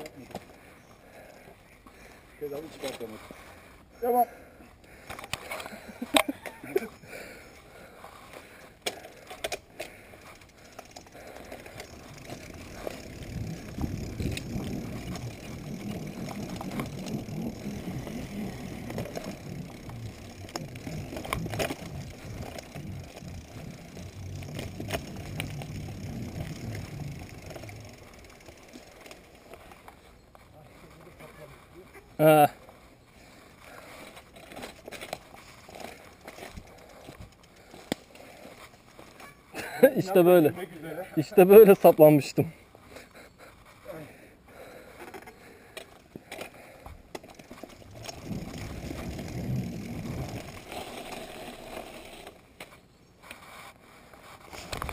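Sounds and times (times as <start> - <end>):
bike rattling: 4.9 - 32.6, 33.2 - 42.3, 43.9 - 54.9
bike tyres rolling on dirt: 4.9 - 43.0, 43.8 - 54.9.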